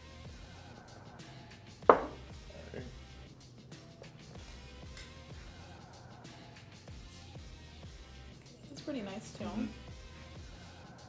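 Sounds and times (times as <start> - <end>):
background music: 0.0 - 11.0
glass bottle knock on wood: 1.9 - 2.2.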